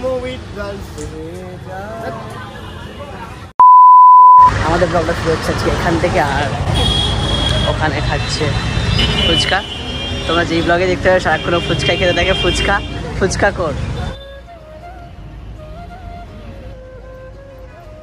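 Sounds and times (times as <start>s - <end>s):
street traffic: 0.0s - 3.6s, 4.3s - 18.0s
high-pitched censor bleep: 3.6s - 4.5s.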